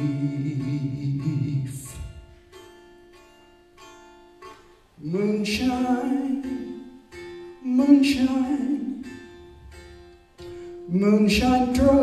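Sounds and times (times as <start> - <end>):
plucked string notes: 0.0 - 12.0.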